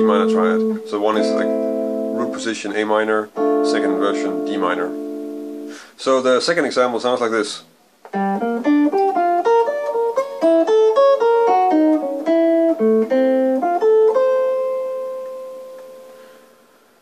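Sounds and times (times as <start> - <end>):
clean electric jazz guitar: 0.0 - 6.0, 6.7 - 16.8.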